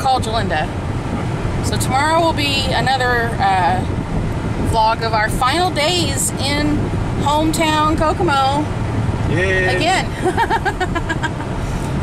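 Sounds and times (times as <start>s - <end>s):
road noise inside vehicle: 0.0s - 12.0s
person laughing: 10.1s - 11.5s.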